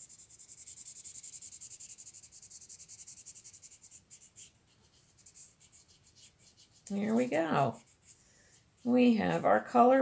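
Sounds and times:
marker scrubbing on paper: 0:00.0 - 0:09.5.

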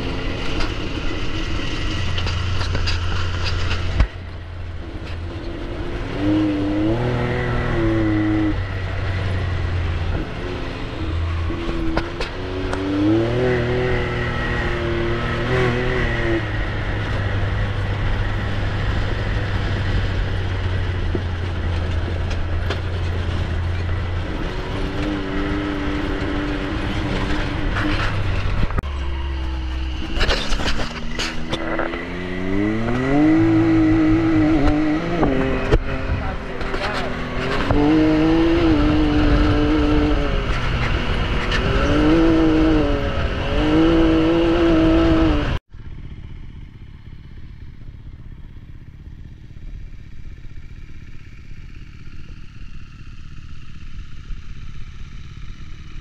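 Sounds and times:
motocross bike engine revving: 0:00.0 - 0:46.1
off-road vehicle engine running: 0:00.0 - 0:56.0
quiet outdoor background: 0:00.0 - 0:56.0.

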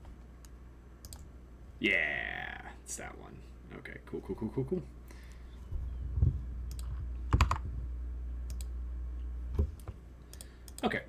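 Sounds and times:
low steady hum: 0:00.0 - 0:11.0
keyboard keystrokes and clicks: 0:00.4 - 0:01.3, 0:06.7 - 0:07.6.

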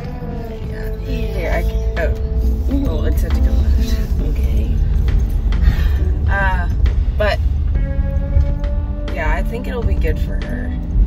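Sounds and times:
car cabin rumble: 0:00.0 - 0:11.0
music playing: 0:00.0 - 0:11.0.

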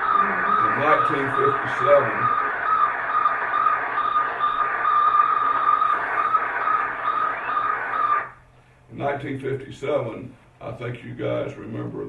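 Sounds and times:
radio static hiss: 0:00.0 - 0:08.4
rapid radio beacon beeps: 0:00.0 - 0:08.4.

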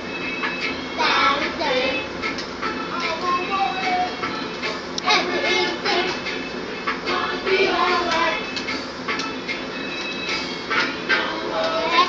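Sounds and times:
reggae music: 0:00.0 - 0:12.0
girl singing: 0:01.0 - 0:02.1, 0:02.9 - 0:04.3, 0:05.1 - 0:06.2, 0:07.1 - 0:08.5, 0:11.2 - 0:12.0.

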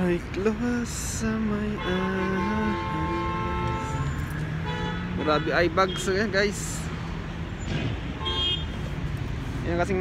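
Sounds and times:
passing cars rumble: 0:00.0 - 0:10.0.

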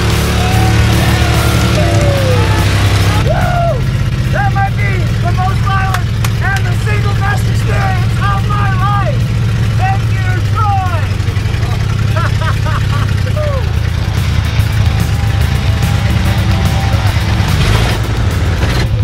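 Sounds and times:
truck engine running: 0:00.0 - 0:19.0
man shouting excitedly: 0:00.1 - 0:12.0, 0:13.2 - 0:13.8.

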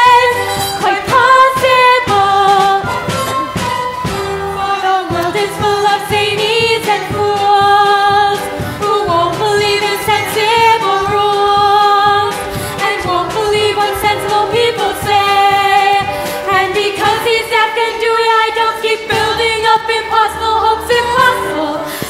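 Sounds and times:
pit orchestra playing: 0:00.0 - 0:17.5
voices singing: 0:00.0 - 0:22.0.

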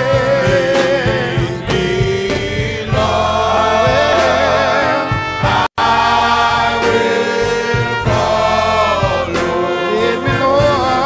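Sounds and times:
men's choir singing gospel: 0:00.0 - 0:11.0.

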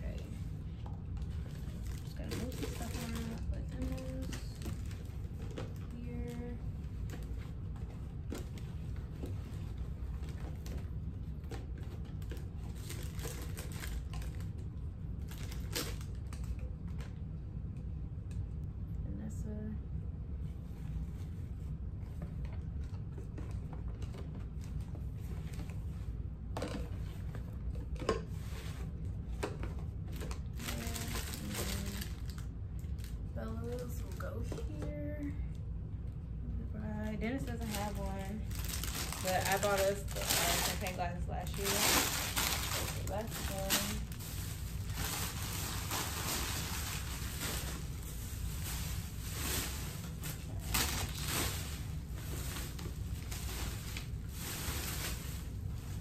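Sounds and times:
low room hum: 0:00.0 - 0:56.0
plastic bags rustling: 0:01.3 - 0:07.7, 0:12.0 - 0:14.6, 0:15.2 - 0:16.6, 0:30.0 - 0:34.4, 0:37.2 - 0:56.0.

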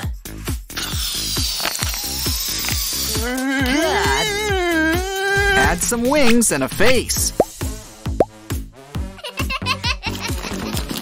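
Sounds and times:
airy hiss of balloon inflating: 0:00.8 - 0:03.3
upbeat music with steady beat: 0:05.8 - 0:10.4.

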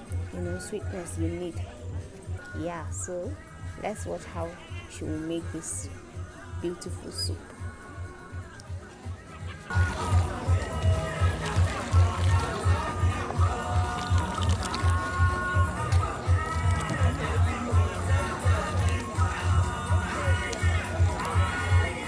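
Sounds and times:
music with bass beat and melody: 0:06.0 - 0:22.0.

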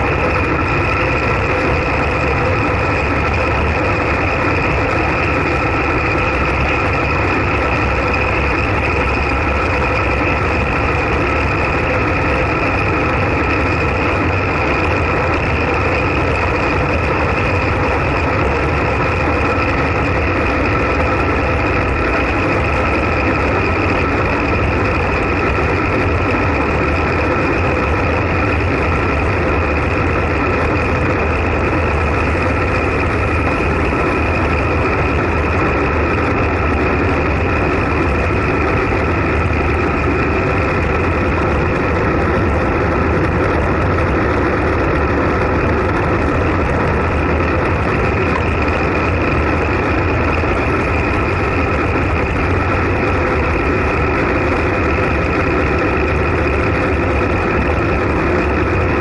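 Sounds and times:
bike tyres on asphalt: 0:00.0 - 0:59.0
wind buffeting microphone: 0:00.0 - 0:59.0.

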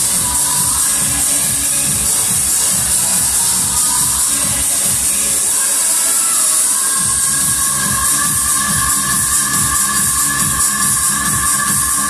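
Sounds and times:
bass drum beat: 0:00.0 - 0:05.4, 0:07.0 - 0:12.0
electronic dance music: 0:00.0 - 0:12.0.

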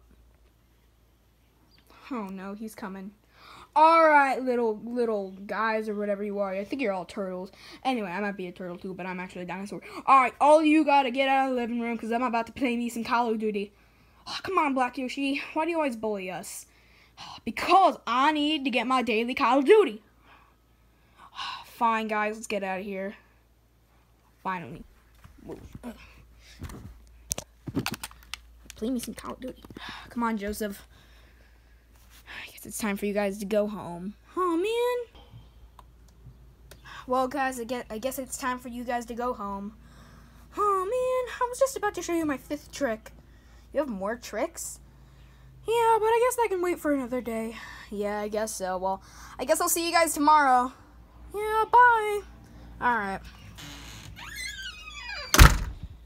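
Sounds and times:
door closing with thunk: 0:55.0 - 0:56.0.

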